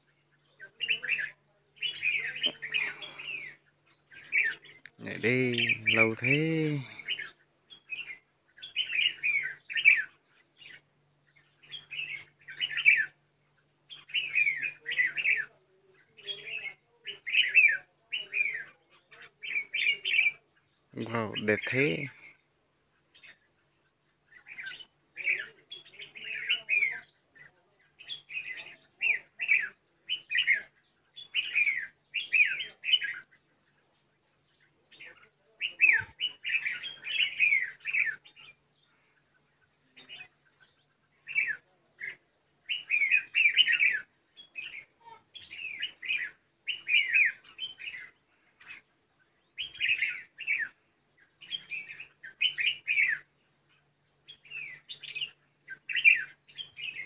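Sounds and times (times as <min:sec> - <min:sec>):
birds chirping rapidly: 0:00.0 - 0:57.0.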